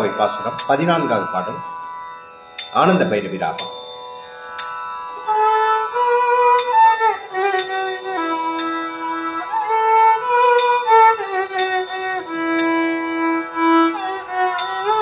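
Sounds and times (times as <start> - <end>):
steady drone: 0.0 - 15.0
violin melody: 0.0 - 15.0.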